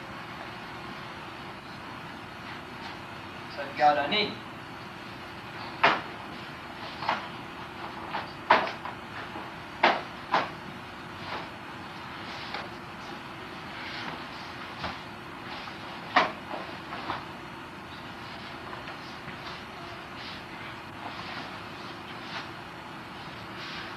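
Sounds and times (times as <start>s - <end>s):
low steady hum: 0.0s - 23.9s.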